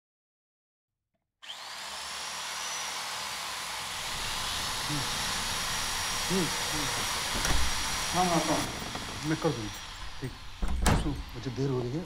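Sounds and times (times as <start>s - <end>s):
electric drill drilling into wall: 1.4s - 12.0s.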